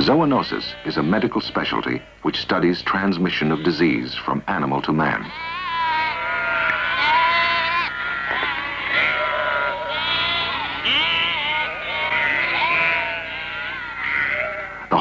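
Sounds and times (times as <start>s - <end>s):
sheep bleating: 0.3s - 2.2s, 5.2s - 15.0s.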